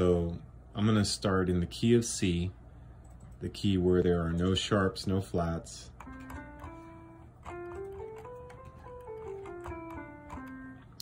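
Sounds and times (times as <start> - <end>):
keyboard playing scale: 6.0 - 11.0.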